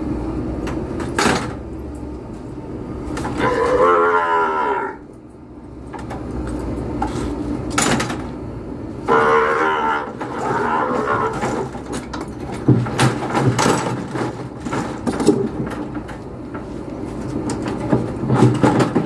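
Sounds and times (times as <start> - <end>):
calf bawling: 3.3 - 5.0, 9.0 - 11.8.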